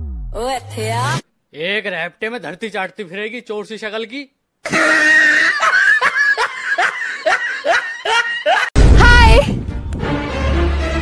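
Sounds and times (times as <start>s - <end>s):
high-pitched laughter: 4.7s - 8.7s.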